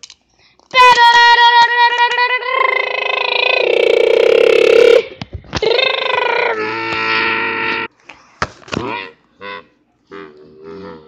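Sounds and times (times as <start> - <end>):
person making held wordless vocal sounds: 0.8 - 7.6, 8.8 - 11.0.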